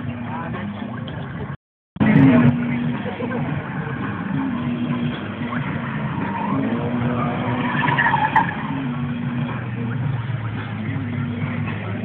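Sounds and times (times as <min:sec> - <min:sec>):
car engine revving: 0:02.0 - 0:12.0
tyres squealing: 0:04.3 - 0:08.9.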